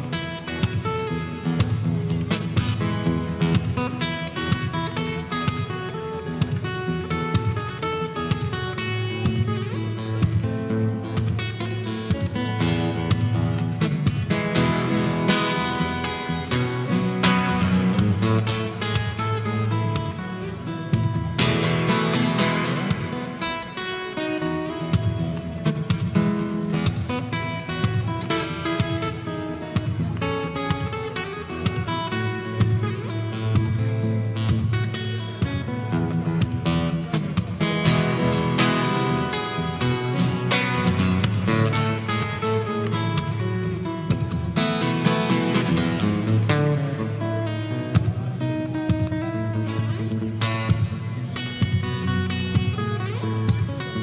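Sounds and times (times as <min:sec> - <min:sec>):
fingerstyle acoustic guitar: 0:00.0 - 0:54.0
percussive guitar strikes: 0:06.4 - 0:33.8, 0:34.4 - 0:54.0.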